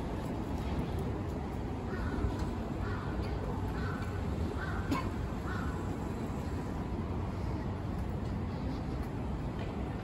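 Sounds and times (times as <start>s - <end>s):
city street traffic hum: 0.0s - 10.0s
crow cawing: 1.9s - 6.0s.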